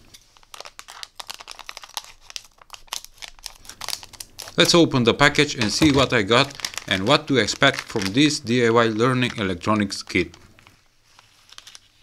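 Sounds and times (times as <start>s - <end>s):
plastic crinkling: 0.0s - 12.0s
scissors snipping plastic bag: 5.6s - 8.3s.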